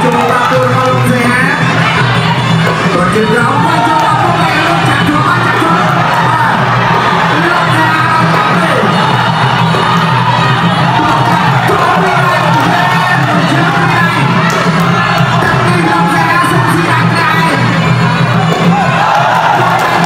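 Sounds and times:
crowd cheering and shouting: 0.0 - 20.0
ringside music: 0.0 - 20.0.

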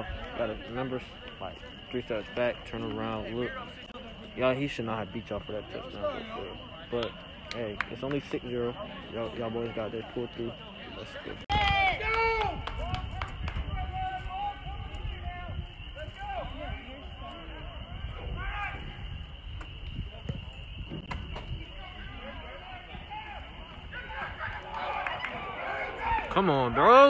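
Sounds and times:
people shouting and chattering: 0.0 - 27.0.

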